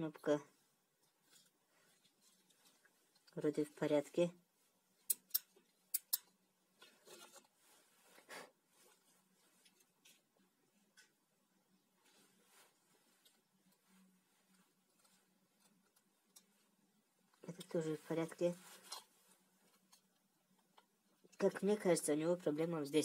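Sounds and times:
soft rustling: 0.5 - 5.8, 6.7 - 21.1.

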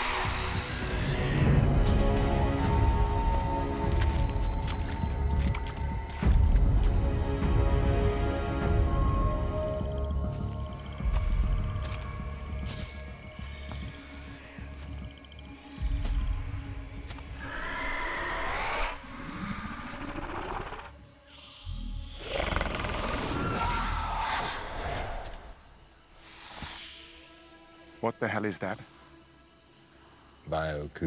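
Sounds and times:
tense film score: 0.0 - 31.0.

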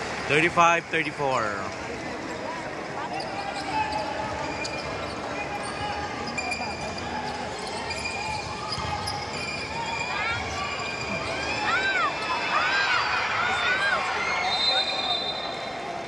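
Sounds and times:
crowd chatter: 0.0 - 16.0
sneaker squeaks: 2.0 - 12.4.

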